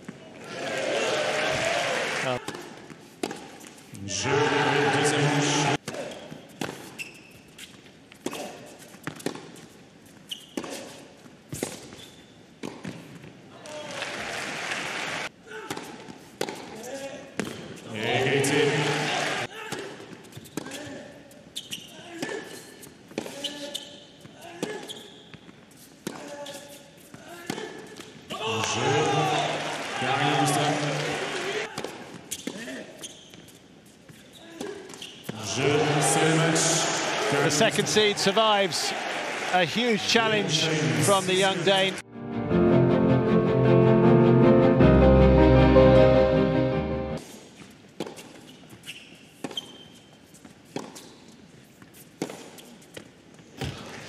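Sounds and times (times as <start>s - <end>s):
tennis ball bouncing: 9.0s - 9.6s, 15.7s - 16.8s, 51.8s - 52.7s
voices: 35.3s - 42.0s.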